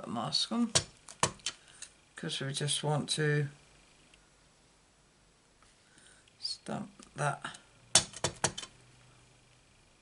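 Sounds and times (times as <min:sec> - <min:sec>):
plastic stamp block clicks: 0:00.7 - 0:01.6, 0:08.0 - 0:08.7.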